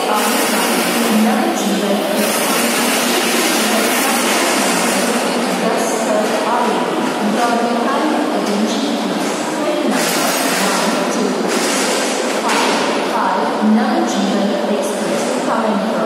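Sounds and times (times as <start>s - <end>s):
announcement over loudspeakers: 0.0s - 16.0s
station noise din: 0.0s - 16.0s.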